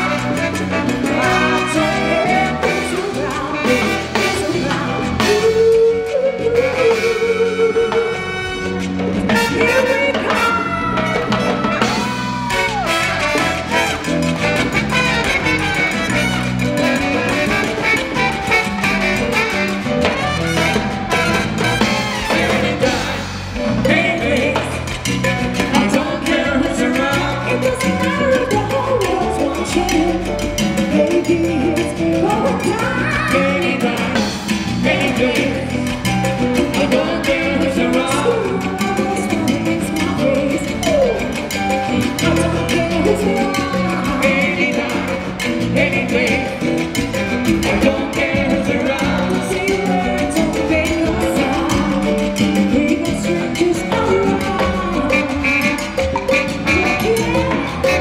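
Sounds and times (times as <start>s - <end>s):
percussion rhythm: 0.0s - 58.0s
salsa band playing: 0.0s - 58.0s
saxophone: 0.0s - 58.0s.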